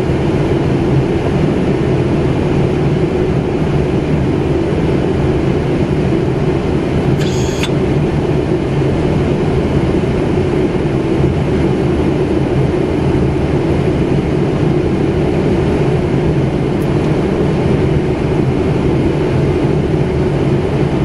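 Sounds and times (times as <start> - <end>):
steady rushing noise in cockpit: 0.0 - 21.0
short high-pitched tone: 7.2 - 7.7.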